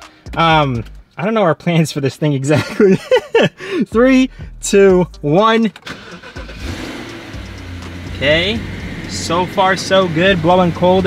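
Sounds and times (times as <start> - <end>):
car engine starting and running: 4.0 - 11.0.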